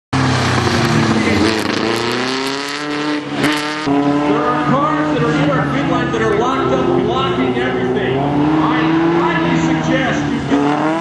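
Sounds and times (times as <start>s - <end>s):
car engine accelerating hard: 0.2s - 11.0s
voices: 4.2s - 11.0s.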